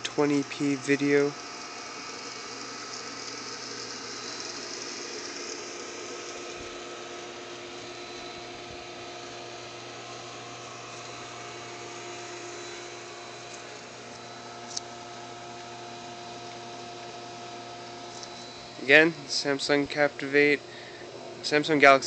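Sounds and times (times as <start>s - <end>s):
mechanical hum: 0.0s - 22.0s.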